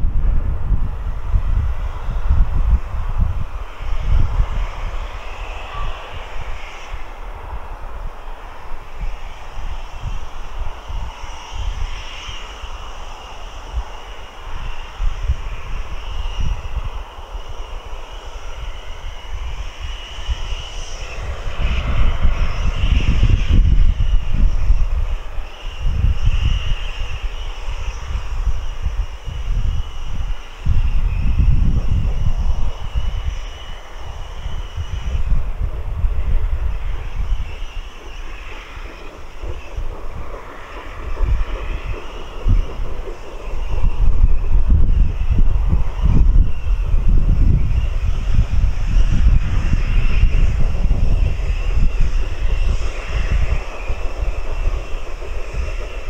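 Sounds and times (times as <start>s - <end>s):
distant steam locomotive rumbling: 0.0s - 56.0s.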